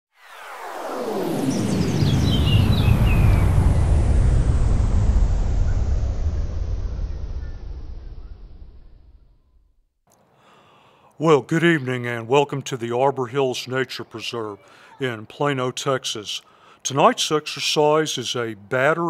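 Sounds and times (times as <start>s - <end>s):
high falling whistle sweeps: 0.1s - 9.7s
deep rumbling swell: 0.4s - 9.7s.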